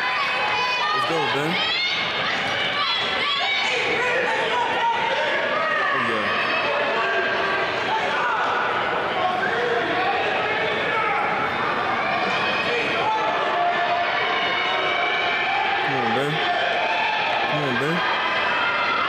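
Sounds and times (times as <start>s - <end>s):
crowd cheering and calling out: 0.0s - 9.3s, 10.3s - 19.0s.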